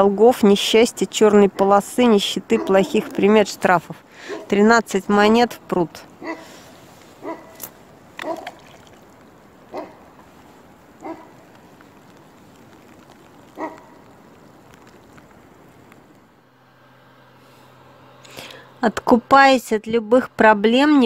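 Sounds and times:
faint outdoor background: 0.0 - 21.0.

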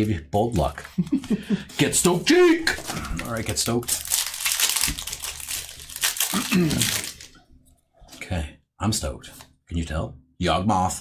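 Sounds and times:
foil wrapper tearing and crinkling: 2.7 - 7.4.

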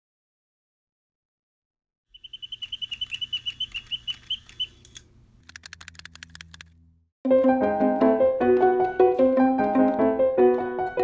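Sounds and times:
high squeaky chirps: 2.1 - 5.0
fast run of clicks: 2.6 - 6.8.

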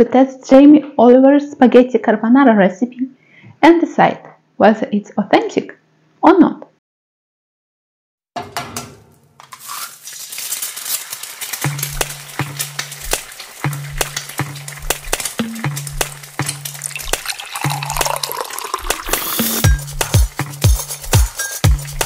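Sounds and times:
egg sizzling in frying pan: 9.4 - 21.1
electronic dance music: 18.8 - 22.0.

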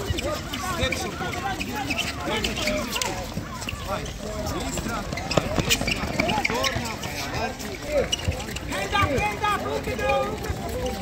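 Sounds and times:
players calling out: 0.0 - 11.0.

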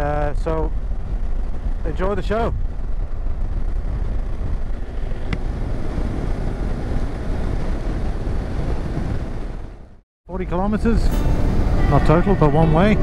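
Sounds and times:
motorcycle engine and road noise: 0.0 - 13.0
wind rushing on microphone: 0.0 - 13.0.

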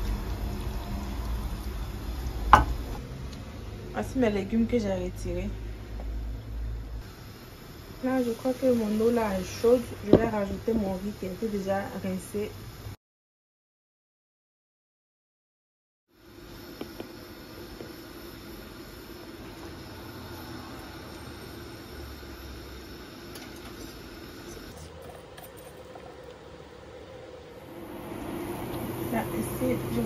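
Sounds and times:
low hum: 0.0 - 12.0
background hiss: 5.6 - 13.0, 16.2 - 30.0.

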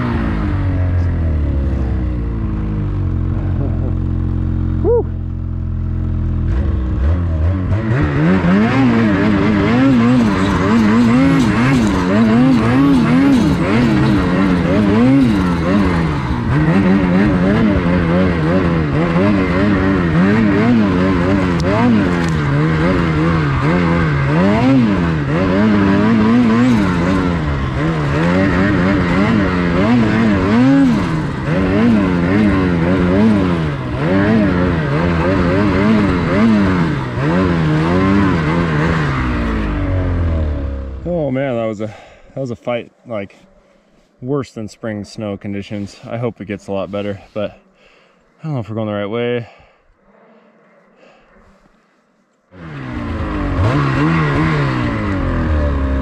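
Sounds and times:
snowmobile engine revving: 0.0 - 51.9, 52.5 - 56.0.

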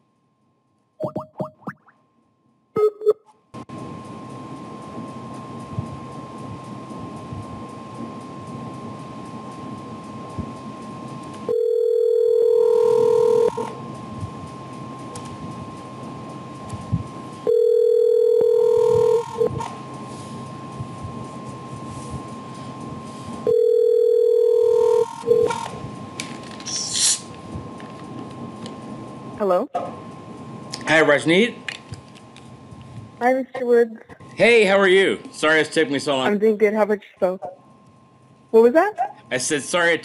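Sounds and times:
telephone ringback tone: 11.5 - 13.7, 17.4 - 19.6, 23.5 - 25.6
phone line hiss: 11.5 - 13.8, 17.4 - 19.7, 23.4 - 25.7.

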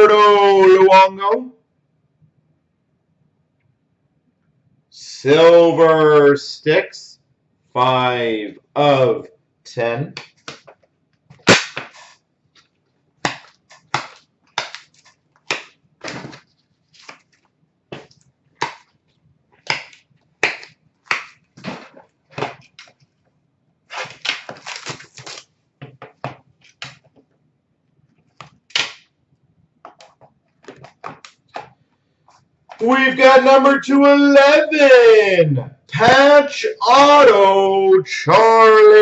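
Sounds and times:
cardboard scraping and rustling: 16.0 - 18.2, 23.9 - 25.5.

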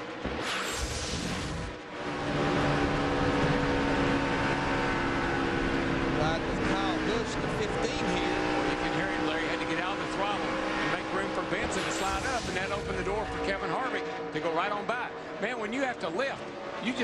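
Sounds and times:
race truck engine at high revs: 0.0 - 17.0.

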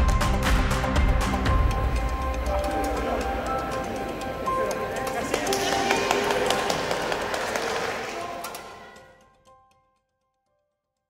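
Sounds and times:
background music: 0.0 - 10.5
group cheering and clapping: 2.4 - 9.1.

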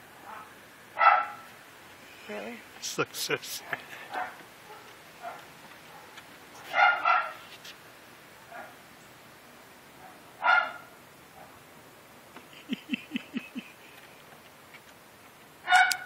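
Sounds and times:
dog barking: 0.2 - 1.5, 3.7 - 7.5, 8.5 - 8.8, 10.0 - 11.6, 15.6 - 16.0
dog yelping: 1.0 - 1.4, 4.2 - 7.4, 15.7 - 16.0.

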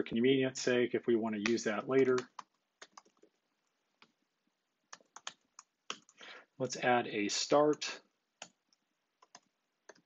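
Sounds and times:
computer keyboard typing: 1.4 - 3.3, 4.9 - 6.2, 9.2 - 10.0.

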